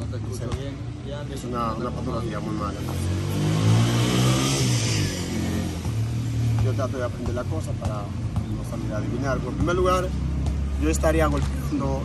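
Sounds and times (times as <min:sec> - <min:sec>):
vehicle engine passing by: 0:01.7 - 0:08.0.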